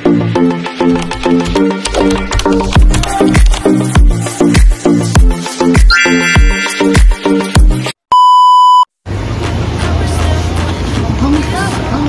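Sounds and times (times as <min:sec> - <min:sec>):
electronic dance beat: 0:00.0 - 0:07.9
electronic beep: 0:05.9 - 0:07.2.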